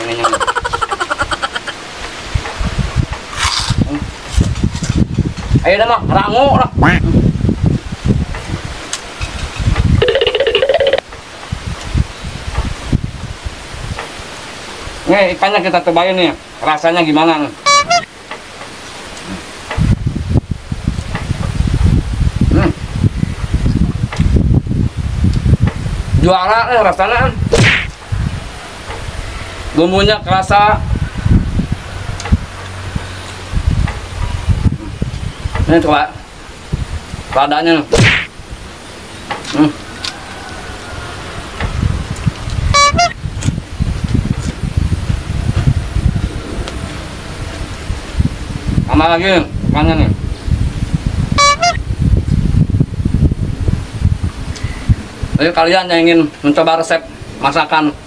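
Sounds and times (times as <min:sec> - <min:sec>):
wind buffeting microphone: 0:00.0 - 0:15.2, 0:18.9 - 0:58.0
vehicle horn toot: 0:17.7 - 0:18.1, 0:42.7 - 0:43.2, 0:51.4 - 0:51.8
loud low rumble: 0:43.8 - 0:49.0.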